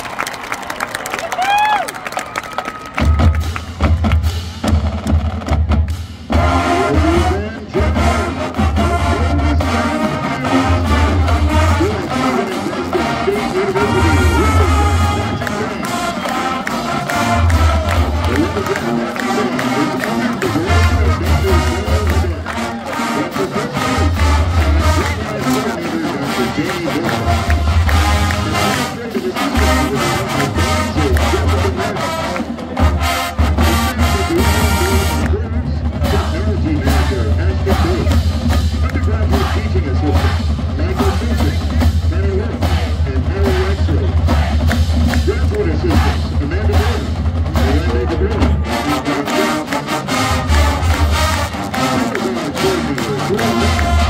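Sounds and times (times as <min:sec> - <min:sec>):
drumline with bass drums: 0:01.2 - 0:54.0
brass and sousaphones playing: 0:06.2 - 0:54.0.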